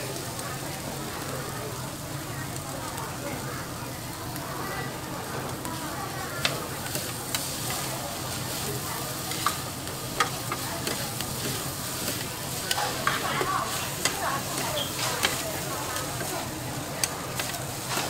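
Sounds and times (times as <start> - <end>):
noodles sizzling on a griddle: 0.0 - 18.0
metal spatulas clacking on griddle: 9.3 - 16.4.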